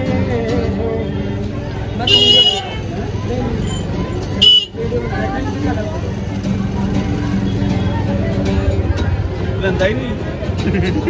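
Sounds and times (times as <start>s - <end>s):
street chatter: 0.0s - 11.0s
traffic: 0.0s - 11.0s
vehicle horn honking: 2.0s - 2.8s, 4.4s - 4.8s.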